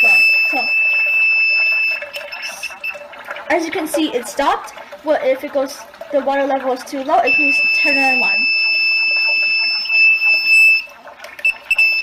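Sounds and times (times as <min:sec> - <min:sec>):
high-pitched alarm tone: 0:00.0 - 0:03.0, 0:07.3 - 0:10.9.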